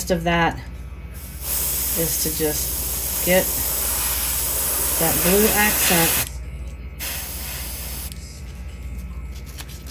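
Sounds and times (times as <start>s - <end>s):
low fan hum: 0.0s - 9.9s
airbrush spraying hiss: 1.3s - 6.3s, 7.0s - 8.1s.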